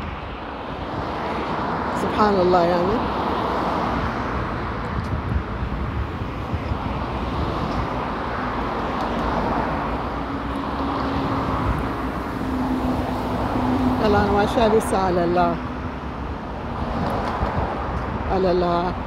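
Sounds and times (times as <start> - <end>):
street traffic: 0.0 - 19.0.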